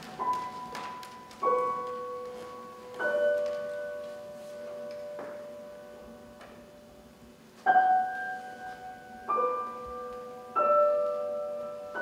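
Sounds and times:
piano chord ringing: 0:07.6 - 0:12.0.

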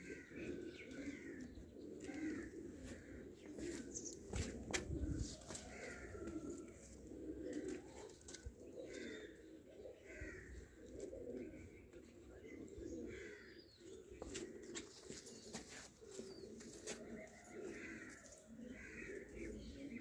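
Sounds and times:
pigeons cooing: 0:00.0 - 0:20.0.

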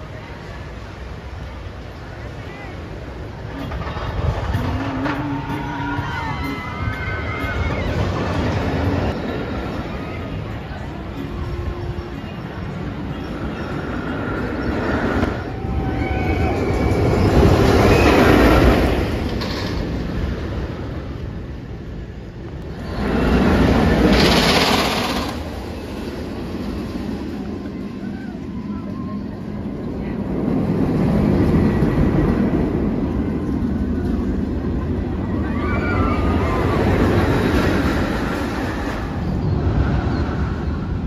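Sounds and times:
roller coaster rumbling on track: 0:00.0 - 0:41.0.

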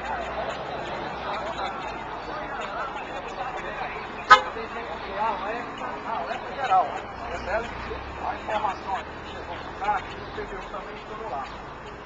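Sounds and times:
ambulance horn toot: 0:04.2 - 0:04.6.

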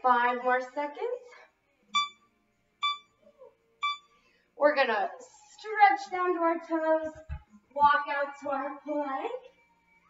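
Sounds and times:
timer beeps: 0:02.0 - 0:02.2, 0:02.8 - 0:03.2, 0:03.8 - 0:04.1.

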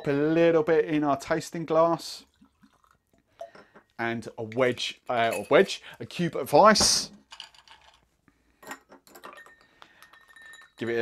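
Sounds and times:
ice cube clinking against glass: 0:05.2 - 0:05.8, 0:06.8 - 0:08.0, 0:08.6 - 0:11.0.

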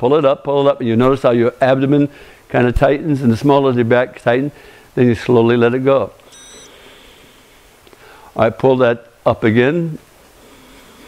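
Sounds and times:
faint room hiss: 0:00.0 - 0:11.0
short high-pitched beep: 0:06.3 - 0:06.7.

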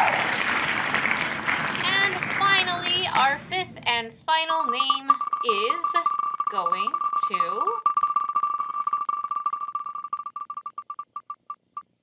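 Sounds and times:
applause and crowd cheering: 0:00.0 - 0:02.9.

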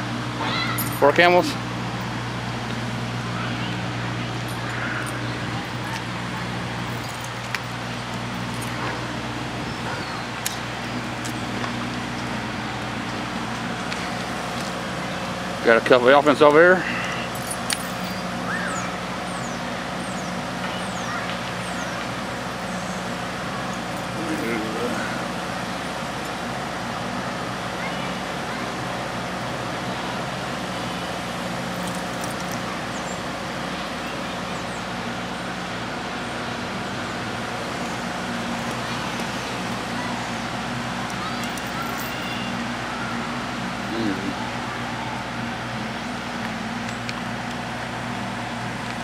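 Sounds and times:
steady engine hum: 0:00.0 - 0:49.0.

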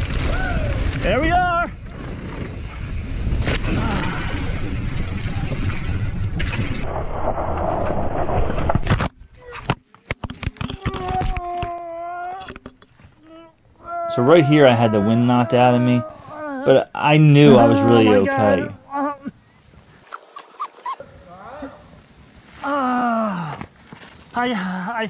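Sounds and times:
bike crashing into tree: 0:00.0 - 0:06.8
wind rushing on helmet camera: 0:00.0 - 0:08.8
bike tyres on dirt: 0:00.0 - 0:09.0, 0:21.8 - 0:24.8
person groaning: 0:22.6 - 0:23.6.

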